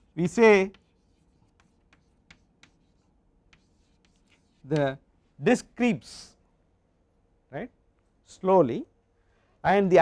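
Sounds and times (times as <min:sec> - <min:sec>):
chalk writing on blackboard: 0:00.0 - 0:05.0.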